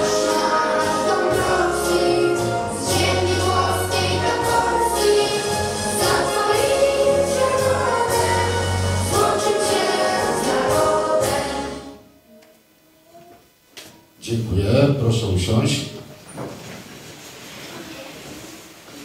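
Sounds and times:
children and adults singing: 0.0 - 12.0
instrumental backing music: 0.0 - 12.4.

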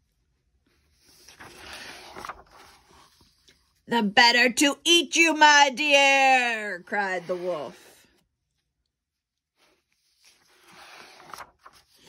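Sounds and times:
paper page turning: 0.7 - 3.8, 9.5 - 12.0.

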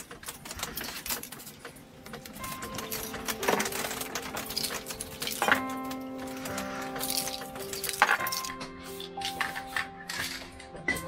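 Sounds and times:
paper crackling and rustling: 0.0 - 10.8.

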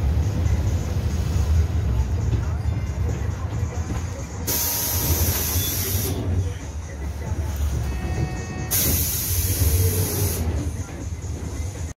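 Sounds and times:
bus engine rumbling: 0.0 - 11.9
compressed air hiss: 4.5 - 6.2, 8.7 - 10.4.

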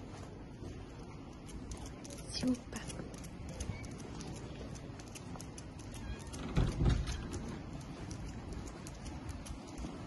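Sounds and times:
footsteps on stone paving: 0.0 - 10.0.

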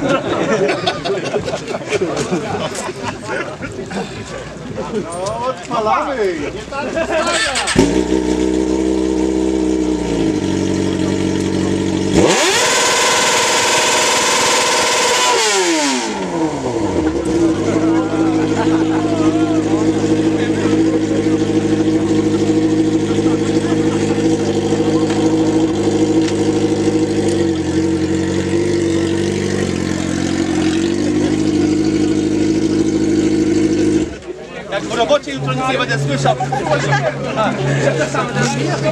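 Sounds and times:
motorcycle engine idling and revving: 7.1 - 38.9.

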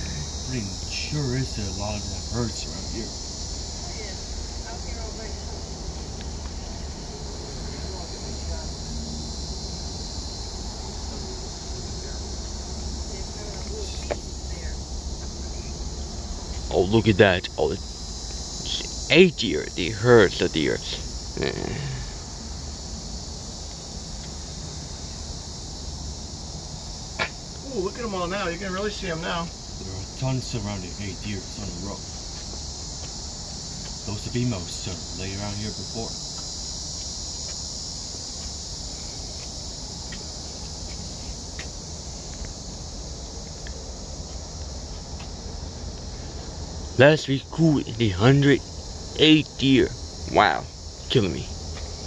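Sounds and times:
high-pitched insect chorus: 0.0 - 52.0.

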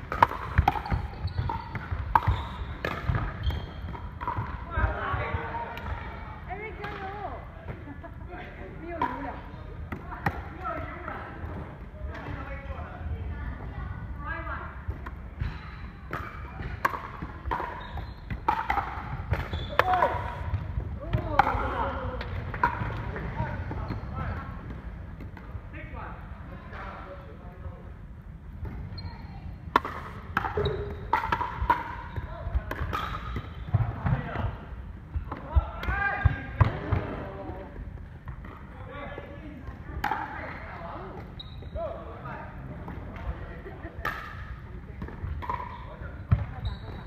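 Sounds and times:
paddles hitting plastic ball: 0.0 - 4.9, 16.1 - 23.8, 29.7 - 34.3
ball bouncing on wooden floor: 0.1 - 6.0
shoes squeaking on hardwood floor: 0.8 - 4.0, 41.3 - 41.8, 46.5 - 47.0.

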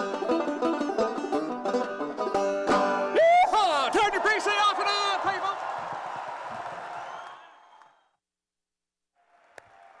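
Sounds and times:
audience applause: 3.8 - 8.1, 9.2 - 10.0.

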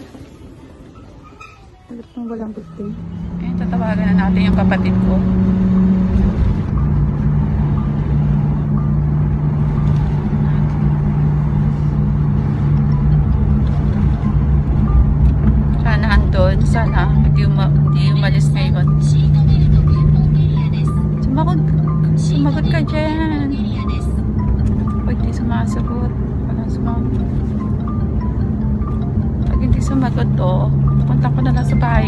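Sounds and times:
road and engine rumble: 0.0 - 32.0
steady low hum: 2.3 - 32.0.

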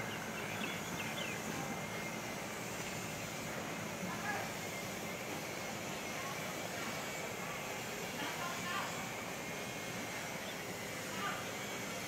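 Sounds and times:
outdoor hum and rush: 0.0 - 12.0.

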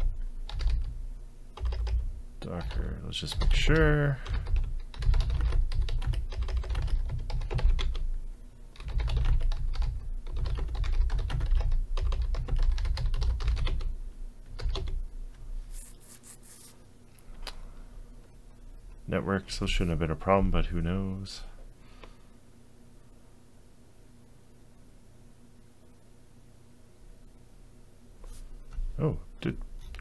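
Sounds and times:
typing on computer keyboard: 0.0 - 0.9, 1.6 - 8.0, 8.8 - 13.9, 14.6 - 15.0.

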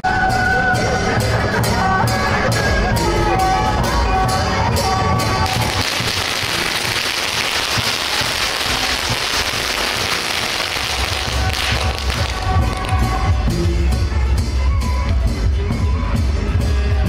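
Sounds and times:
band music with held notes: 0.0 - 17.0
firecrackers crackling: 5.4 - 13.5.

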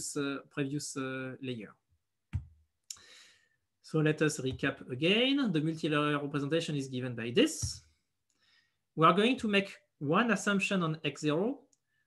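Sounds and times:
faint breathy hiss: 2.9 - 3.5.

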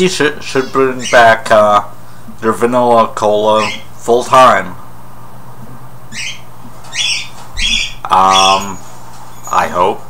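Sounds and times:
bird squawks: 0.4 - 1.4, 3.6 - 3.9, 6.1 - 8.8.

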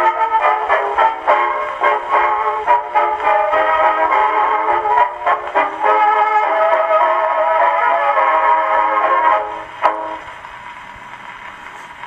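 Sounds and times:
dance orchestra record playing: 0.0 - 12.0
record surface hiss: 0.0 - 12.0.

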